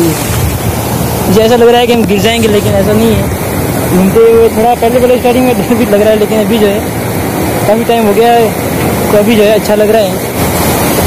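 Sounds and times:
man speaking: 0.0 - 0.2, 1.2 - 6.9, 7.6 - 10.3
sea surf breaking: 0.0 - 11.0.

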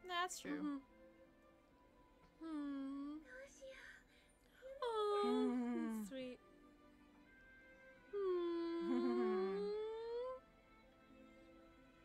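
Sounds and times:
soft background music: 0.0 - 12.0
person humming: 0.5 - 0.8, 2.4 - 3.3, 4.7 - 6.2, 8.2 - 10.4.

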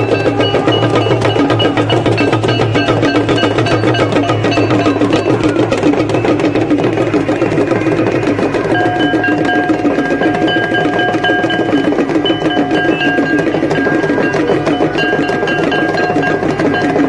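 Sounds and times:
steady ringing tone: 0.0 - 7.2, 8.5 - 17.0
rapid metallic and drum strikes: 0.0 - 17.0
ringing bells: 0.0 - 17.0.

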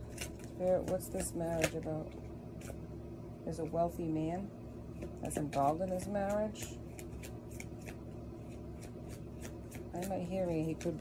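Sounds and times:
steady low hum: 0.0 - 11.0
cards being shuffled: 5.0 - 11.0.

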